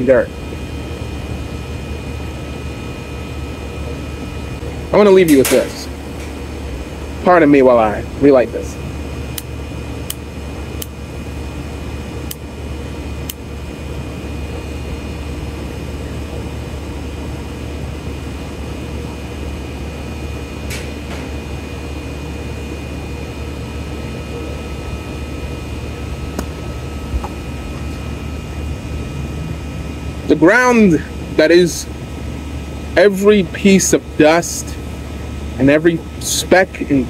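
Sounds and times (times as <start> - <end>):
machine hum and whir: 0.0 - 37.0.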